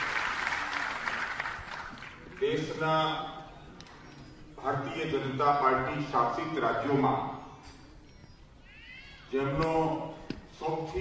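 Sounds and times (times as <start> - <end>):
man speaking with echo: 2.4 - 3.5, 4.6 - 7.5, 9.3 - 11.0.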